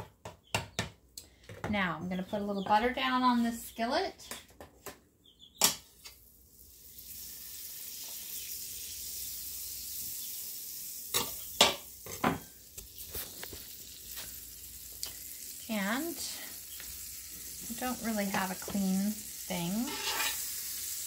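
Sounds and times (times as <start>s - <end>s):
butter sizzling on griddle: 6.2s - 21.0s.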